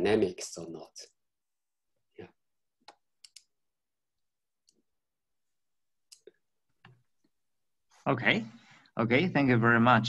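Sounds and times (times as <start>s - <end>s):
computer mouse clicks: 2.8s - 3.5s.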